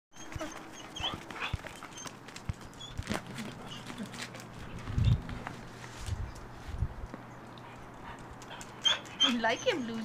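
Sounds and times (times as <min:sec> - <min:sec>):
dog paws thudding on ground: 0:00.2 - 0:07.3.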